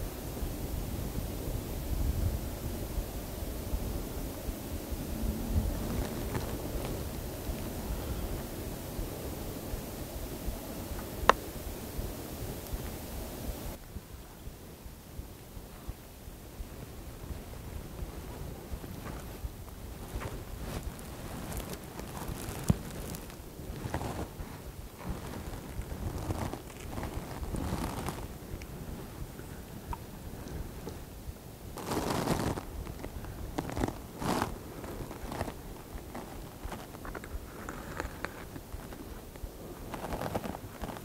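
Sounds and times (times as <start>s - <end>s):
clothing rustling: 4.8s - 13.8s, 15.6s - 29.4s, 31.8s - 41.0s.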